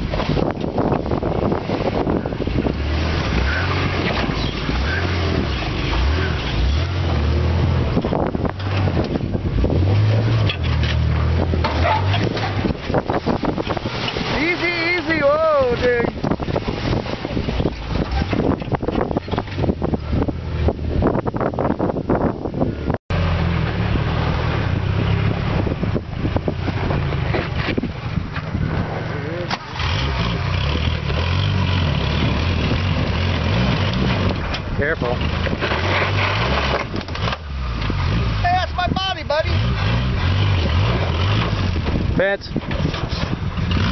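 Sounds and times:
off-road engine revving: 0.0 - 43.9
wind buffeting microphone: 0.0 - 43.9.

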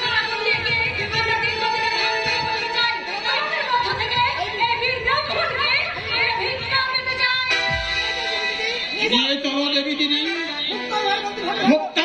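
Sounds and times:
steady drum beat: 0.0 - 9.2
instrumental backing: 0.0 - 12.0.

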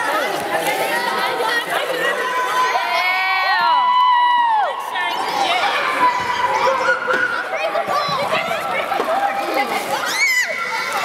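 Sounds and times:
children chattering: 0.0 - 3.8, 4.6 - 11.0
children cheering shouts: 2.4 - 9.0, 9.9 - 11.0.

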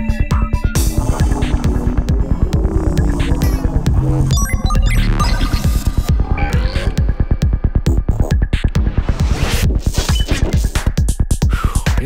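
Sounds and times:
psytrance dance music: 0.0 - 12.0.

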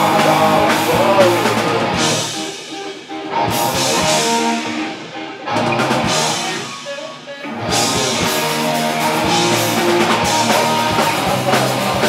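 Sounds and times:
drum kit: 0.0 - 6.9, 7.6 - 12.0
distorted electric guitars: 0.0 - 12.0
rock band playing live: 0.0 - 12.0.

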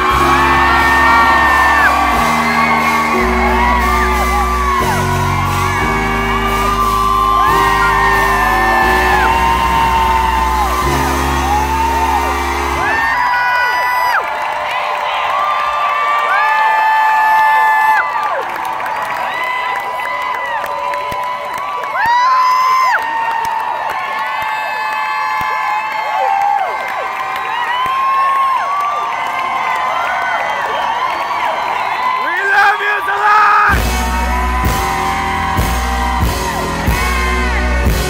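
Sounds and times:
deep bass notes: 0.0 - 13.0, 33.7 - 38.0
high sliding notes: 0.0 - 13.4
live band music: 0.0 - 13.8, 33.5 - 38.0
people whooping: 0.0 - 38.0.

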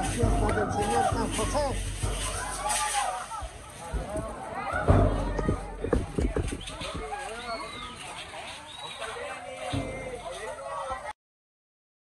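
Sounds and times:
sharp knocks: 0.0 - 7.3
people talking: 0.0 - 11.2.

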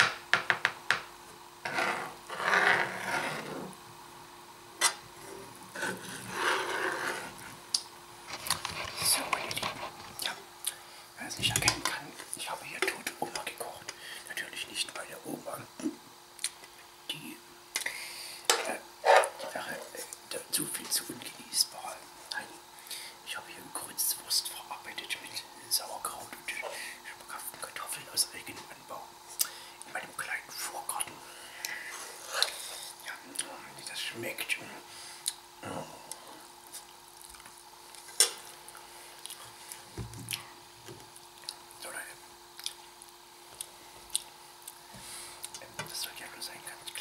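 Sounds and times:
low steady hum: 0.0 - 47.0
soft whispering: 8.8 - 16.0, 17.0 - 29.2, 29.8 - 34.9, 35.6 - 36.9, 41.8 - 42.3, 45.5 - 47.0
mouth clicks and lip smacks: 42.6 - 44.8.

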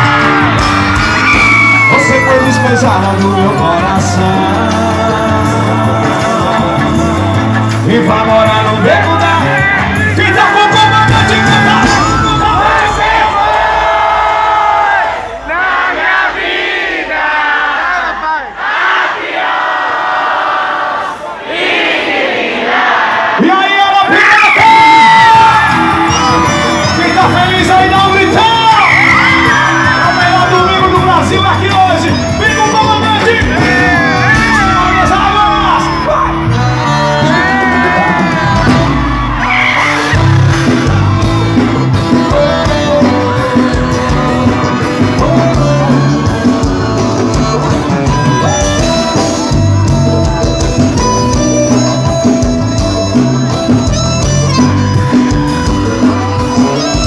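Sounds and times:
live band playing: 0.0 - 17.3, 22.7 - 57.0
crowd singing and cheering: 0.0 - 57.0.

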